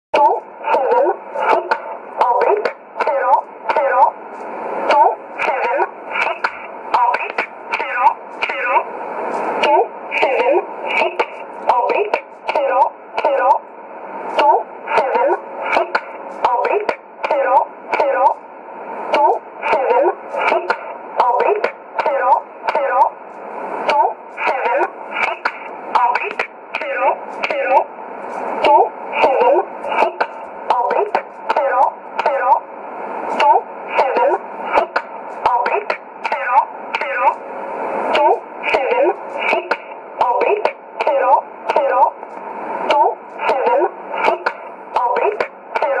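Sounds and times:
recorded woman reading digits: 0:00.2 - 0:04.2, 0:04.9 - 0:08.9, 0:09.6 - 0:13.7, 0:14.3 - 0:32.8, 0:33.4 - 0:37.5, 0:38.1 - 0:42.2, 0:42.8 - 0:46.0
static clicks: 0:00.2 - 0:46.0.

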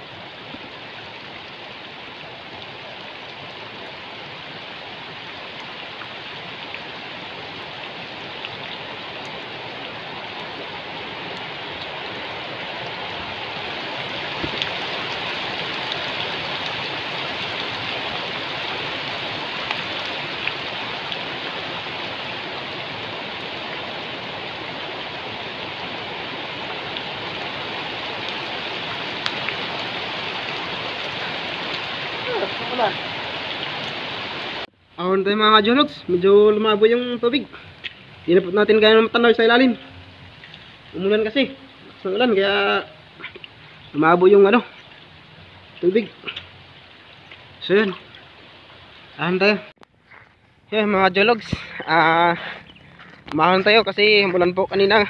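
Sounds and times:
heavy rain on water: 0:00.0 - 0:34.8, 0:35.6 - 0:49.7.

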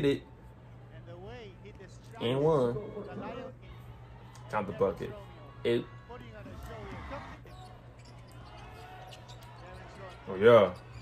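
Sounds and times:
arena noise: 0:00.0 - 0:11.0.

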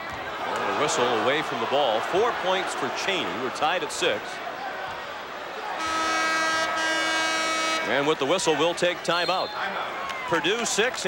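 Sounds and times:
arena horn blast: 0:05.7 - 0:08.2.

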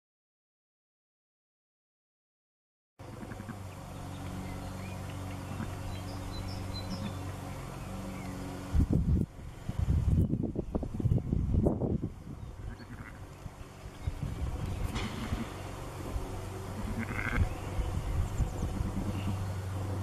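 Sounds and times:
faint birdsong: 0:03.0 - 0:20.0
steady low hum: 0:03.0 - 0:20.0
sheep calling: 0:03.1 - 0:03.6, 0:12.6 - 0:13.3, 0:16.6 - 0:17.6, 0:18.6 - 0:19.5.

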